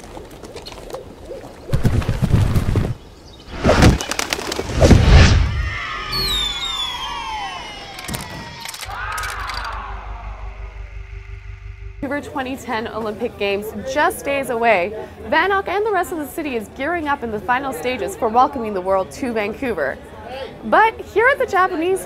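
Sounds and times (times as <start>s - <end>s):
rising-and-falling call: 4.7s - 12.0s
falling whistle-like glides: 4.8s - 12.1s.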